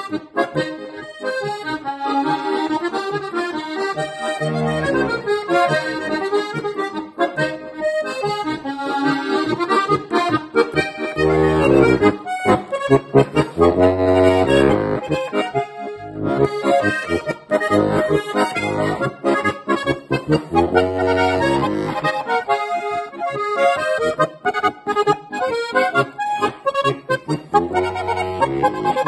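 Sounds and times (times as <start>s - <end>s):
button accordion playing folk tune: 0.0s - 29.0s.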